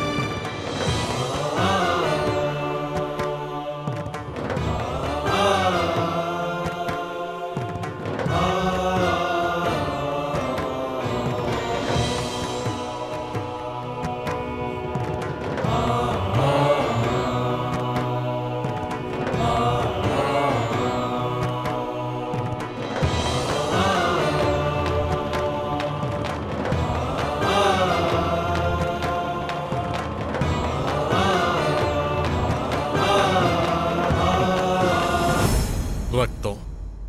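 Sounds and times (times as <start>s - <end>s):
chorus chanting long notes: 0.0s - 36.3s.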